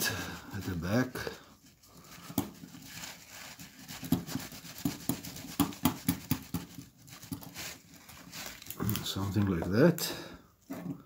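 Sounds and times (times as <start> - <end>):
paper towel rubbing on metal: 0.0 - 9.2.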